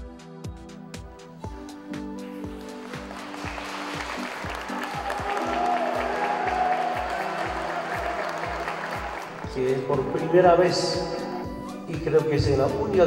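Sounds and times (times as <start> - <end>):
background music with beat: 0.0 - 13.0
people applauding: 2.5 - 10.1.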